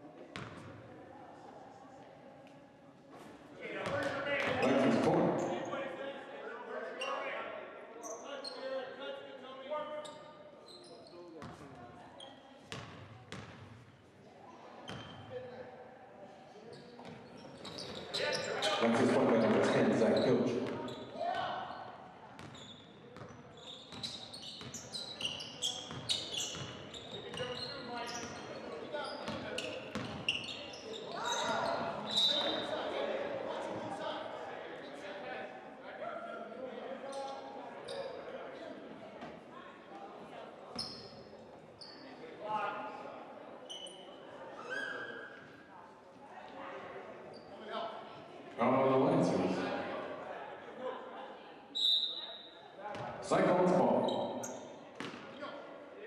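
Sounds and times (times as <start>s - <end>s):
voices of players and crowd: 0.0s - 56.0s
sneakers squeaking: 0.3s - 0.8s, 3.2s - 5.8s, 10.0s - 14.0s, 14.8s - 15.3s, 16.7s - 32.8s, 37.1s - 38.2s, 40.7s - 42.2s, 43.6s - 45.7s, 47.3s - 47.7s, 51.7s - 53.2s, 53.8s - 55.6s.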